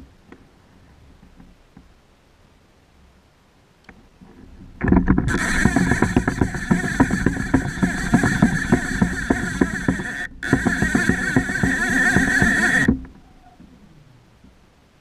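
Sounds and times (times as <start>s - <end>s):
fishing reel drag clicking buzz: 5.3s - 13.2s.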